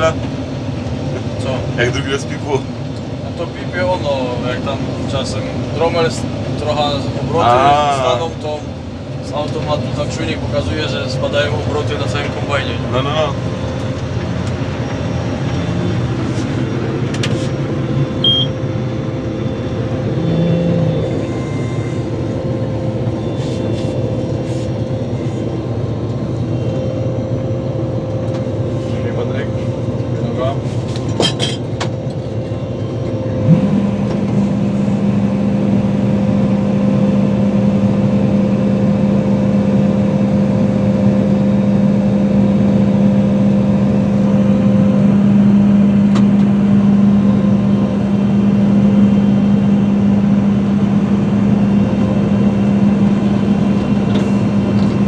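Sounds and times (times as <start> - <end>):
combine harvester running: 0.0 - 55.0.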